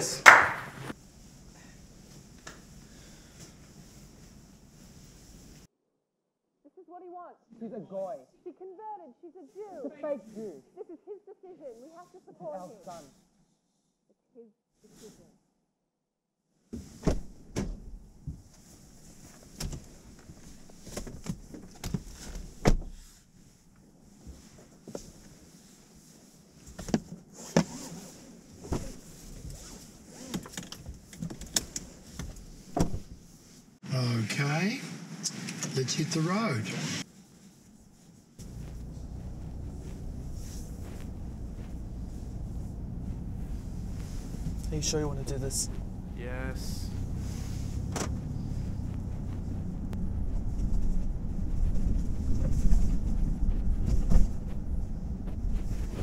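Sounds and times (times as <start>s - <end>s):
rustling against a car seat: 0.9s - 5.7s, 16.8s - 33.8s, 36.3s - 56.0s
thump: 16.8s - 18.4s, 32.8s - 33.1s, 47.9s - 48.2s
car road and engine rumble: 38.4s - 56.0s.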